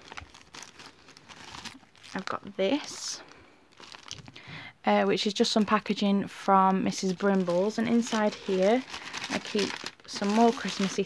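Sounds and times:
paper bag crinkling: 0.0s - 2.4s, 3.7s - 4.3s, 6.9s - 11.0s.

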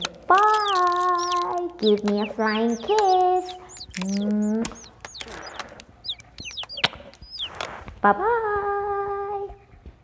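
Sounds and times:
sharp clicks: 0.0s - 8.0s
birds chirping: 0.0s - 10.0s.

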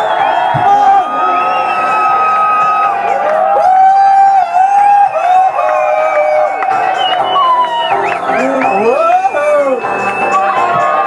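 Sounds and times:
crowd cheering and whooping: 0.0s - 11.0s
electronic dance music: 0.0s - 11.0s.

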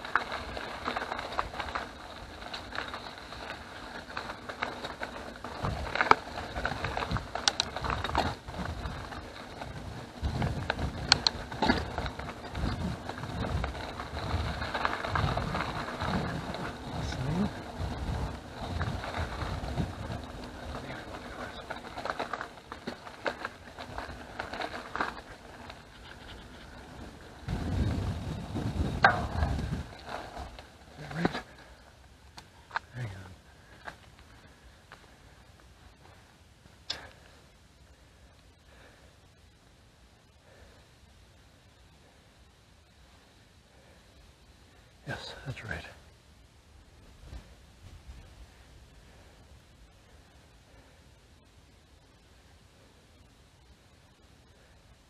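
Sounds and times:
bike clicks and rattles: 0.0s - 39.1s
bike tyres rumbling on gravel: 0.0s - 55.0s
wind on microphone: 5.6s - 21.7s, 26.0s - 30.6s.

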